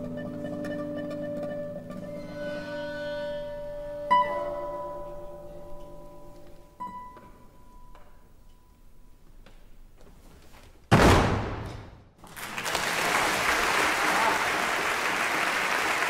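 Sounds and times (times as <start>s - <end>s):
orchestra with classical guitar: 0.0s - 7.4s.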